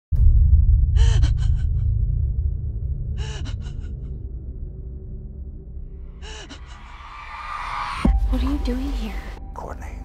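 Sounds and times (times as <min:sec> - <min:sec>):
deep low rumbling drone: 0:00.2 - 0:09.5.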